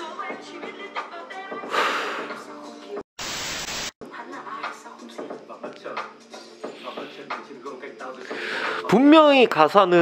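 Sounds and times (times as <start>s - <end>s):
hip-hop music: 0.0s - 3.0s, 4.0s - 10.0s
hiss-like static: 3.2s - 4.0s.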